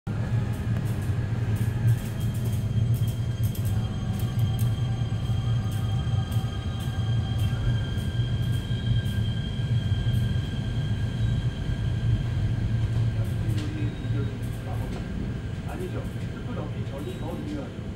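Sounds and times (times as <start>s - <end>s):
electric train low rumble: 0.1s - 17.9s
electric whine of train drive: 0.1s - 17.9s.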